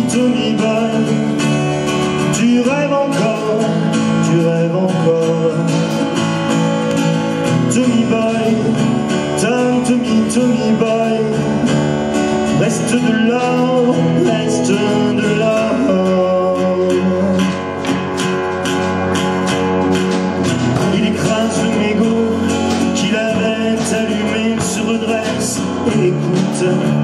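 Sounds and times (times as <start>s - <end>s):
drum kit: 0.0s - 27.0s
melodic lead line: 0.0s - 27.0s
strummed acoustic guitars: 0.0s - 27.0s.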